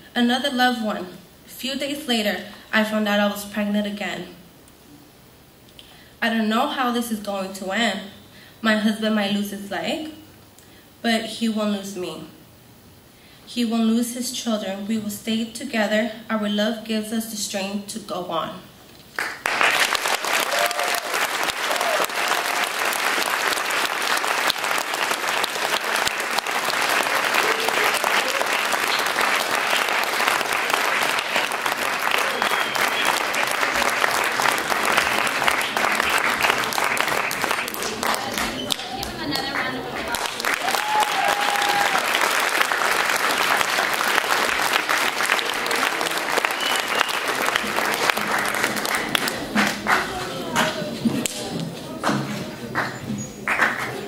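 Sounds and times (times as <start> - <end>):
audience applauding: 19.1 - 51.4, 52.8 - 54.0.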